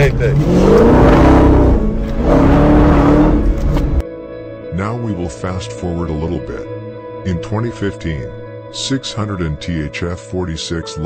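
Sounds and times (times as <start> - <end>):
engine revving: 0.0 - 4.0.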